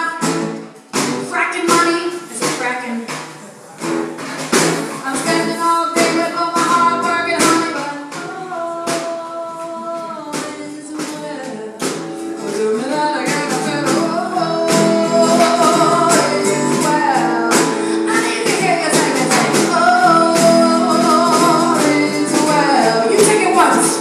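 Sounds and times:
woman singing: 0.0s - 0.6s, 1.2s - 3.2s, 4.9s - 24.0s
strummed acoustic guitar: 0.0s - 24.0s.

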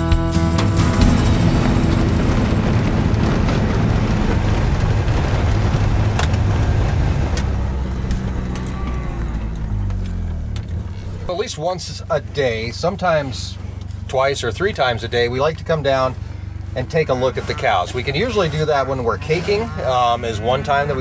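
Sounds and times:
utility vehicle engine running: 0.0s - 21.0s
man talking: 11.3s - 16.2s, 16.8s - 21.0s.

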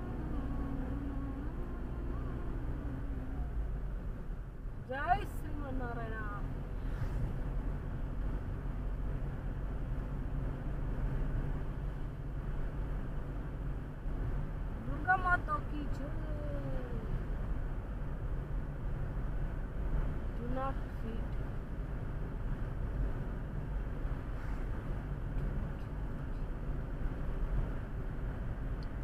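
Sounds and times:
car road and engine rumble: 0.0s - 29.0s.

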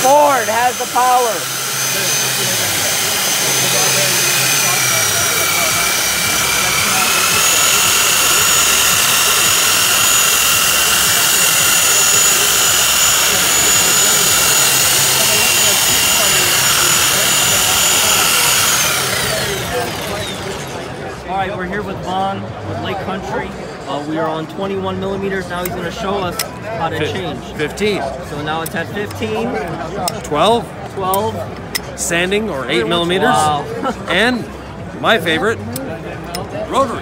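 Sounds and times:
electric polisher whining: 0.0s - 21.0s.

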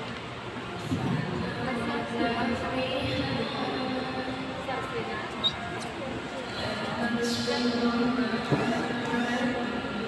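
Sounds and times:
people talking: 0.7s - 10.0s.

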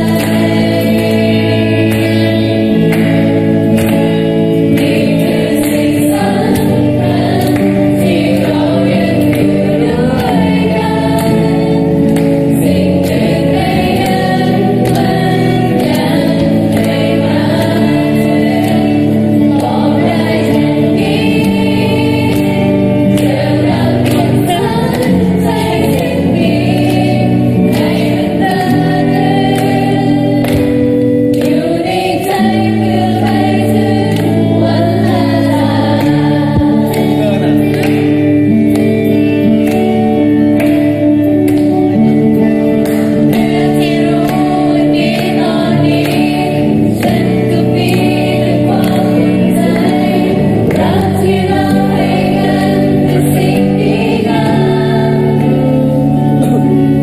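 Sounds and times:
electric guitar: 0.0s - 57.0s
group of voices singing: 0.0s - 57.0s.

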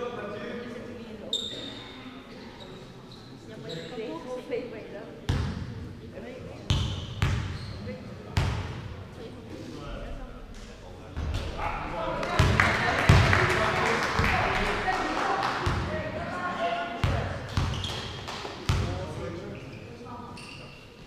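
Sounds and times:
murmur of voices: 0.0s - 21.0s
shoe squeak: 1.3s - 4.2s, 6.7s - 8.0s, 17.6s - 18.2s, 19.5s - 21.0s
basketball bouncing on hall floor: 6.7s - 7.6s, 8.4s - 8.8s, 12.3s - 13.4s, 17.0s - 19.2s.

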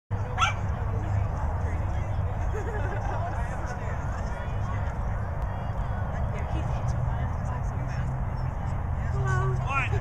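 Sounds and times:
faint voices: 0.1s - 10.0s
dog yipping: 0.4s - 0.6s.

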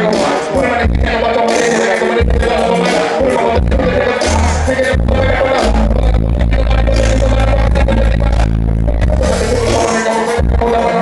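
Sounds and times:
loud hip-hop beat: 0.0s - 11.0s
person rapping: 0.0s - 11.0s
deep bass note: 3.6s - 9.8s.

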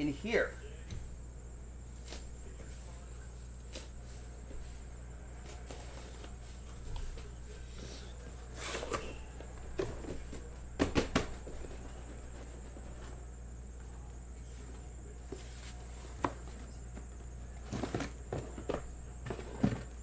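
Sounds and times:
knocks on cardboard box: 10.8s - 11.7s
cardboard flaps rustling: 14.6s - 20.0s.

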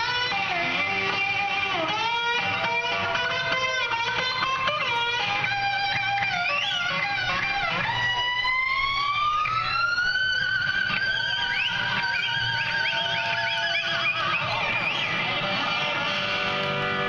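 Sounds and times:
electric guitar solo: 0.0s - 17.0s
rock band playing: 0.0s - 17.0s.

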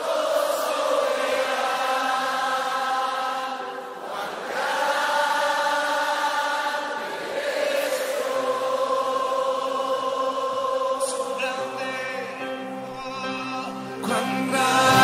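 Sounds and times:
choir-like worship chords: 0.0s - 15.0s.

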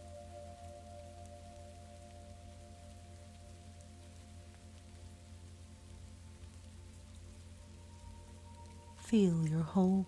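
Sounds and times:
faint steady rain: 0.0s - 10.0s
soft ambient music: 0.0s - 10.0s.

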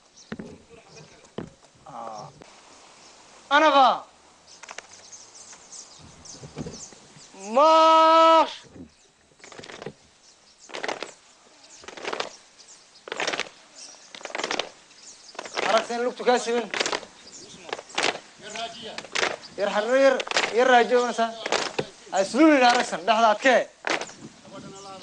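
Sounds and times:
person shouting a command: 7.4s - 8.6s
marching footsteps in step: 9.4s - 10.0s, 10.7s - 11.2s, 11.8s - 12.4s, 13.0s - 24.2s.

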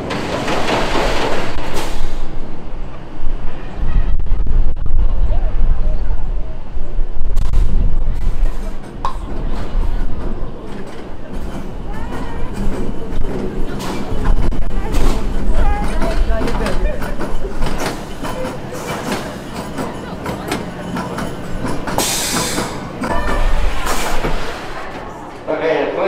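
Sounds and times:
roller coaster rumbling and clattering: 0.0s - 26.0s.

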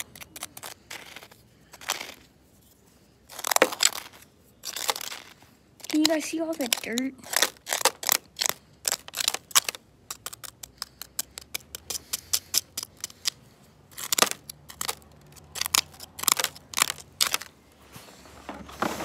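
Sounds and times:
plastic utensils scraping dirt: 0.0s - 19.0s.

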